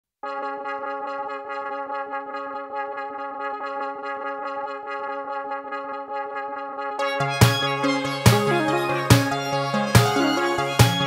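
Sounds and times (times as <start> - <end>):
held bright chord with flutter: 6.9 - 11.0.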